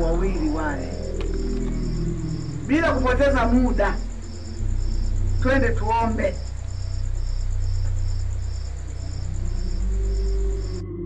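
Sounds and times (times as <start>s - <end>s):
crickets chirping: 0.0s - 11.0s
low steady hum: 0.0s - 11.0s.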